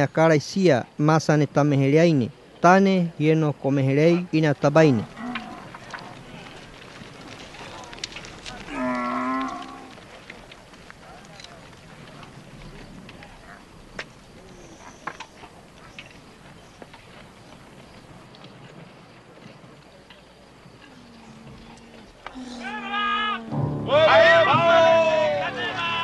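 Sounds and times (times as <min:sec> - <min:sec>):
faint outdoor ambience: 0:00.0 - 0:26.0
cow mooing: 0:05.1 - 0:05.8, 0:08.7 - 0:09.9
person shouting: 0:22.4 - 0:26.0.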